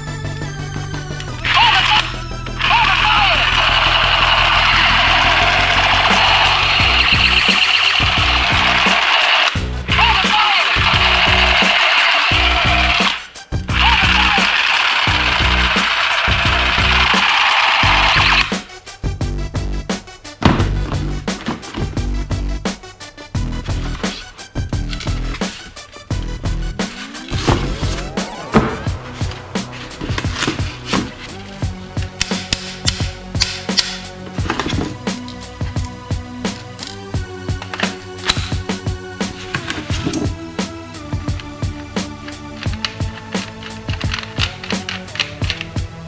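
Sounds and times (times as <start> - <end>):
background music with steady beat: 0.0 - 46.0
toy rifle buzzing crackle: 2.8 - 18.5.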